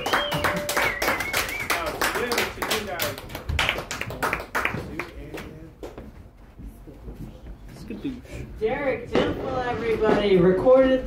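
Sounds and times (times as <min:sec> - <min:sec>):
audience clapping: 0:00.0 - 0:06.0.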